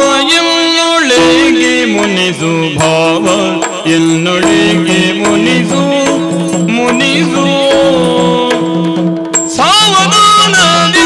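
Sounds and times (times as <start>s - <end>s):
drum strokes: 0.0s - 11.0s
jingling percussion: 0.0s - 11.0s.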